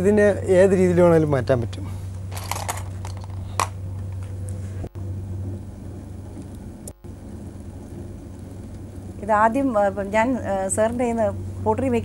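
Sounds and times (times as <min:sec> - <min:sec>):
potter's wheel rumbling hiss: 0:04.6 - 0:12.0.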